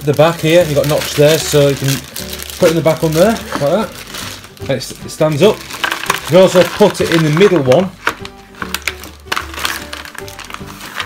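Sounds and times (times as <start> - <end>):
puzzle pieces clicking in plastic bag: 0.0 - 4.5, 5.3 - 11.0
background music: 0.0 - 11.0.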